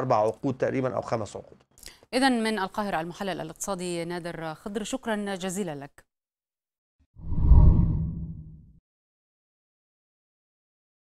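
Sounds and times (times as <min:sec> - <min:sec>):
deep rumbling whoosh: 0:07.2 - 0:08.6.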